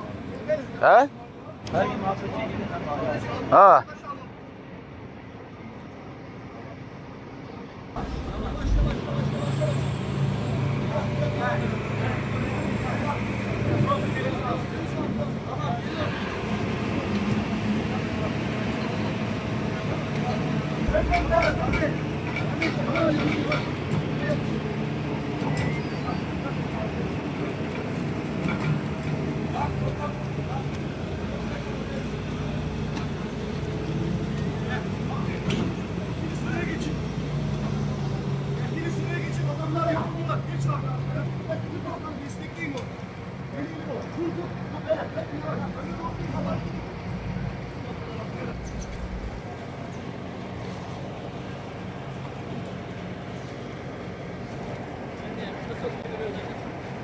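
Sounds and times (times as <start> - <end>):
engine running: 8.0 - 40.3, 45.5 - 55.4.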